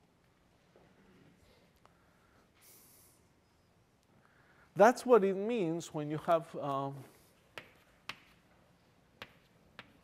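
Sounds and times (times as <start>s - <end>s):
chalk tapping blackboard: 7.5s - 8.4s, 9.2s - 10.0s.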